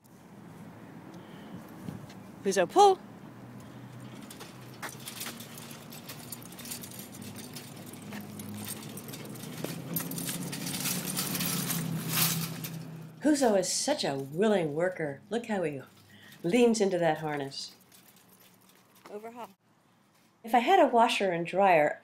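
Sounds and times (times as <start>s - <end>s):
dog harness jingling: 3.6s - 13.1s, 15.8s - 19.5s
wagon wheels rattling on concrete: 3.6s - 13.2s, 15.7s - 19.5s.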